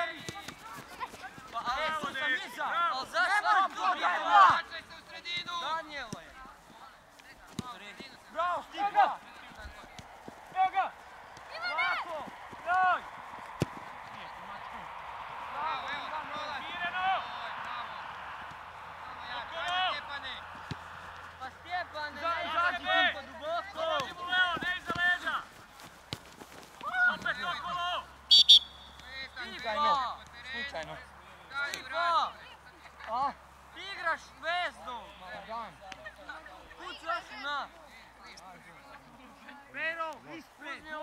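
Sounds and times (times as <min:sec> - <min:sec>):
players shouting calls: 0:00.0 - 0:41.0.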